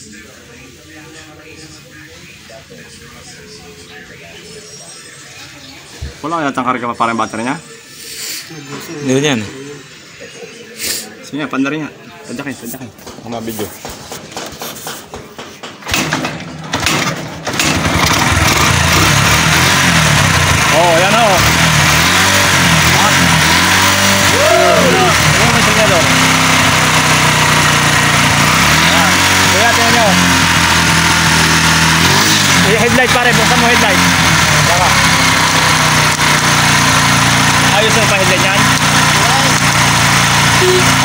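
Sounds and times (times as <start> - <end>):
motorcycle engine starting: 15.8 - 41.0.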